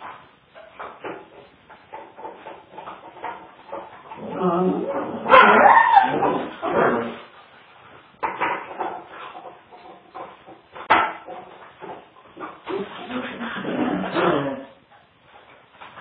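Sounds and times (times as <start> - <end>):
dogs playing vocalizing: 0.0 - 15.4.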